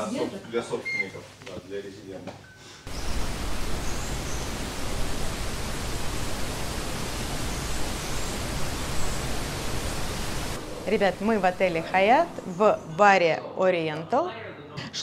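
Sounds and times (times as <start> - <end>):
steady rushing noise: 2.9 - 12.3.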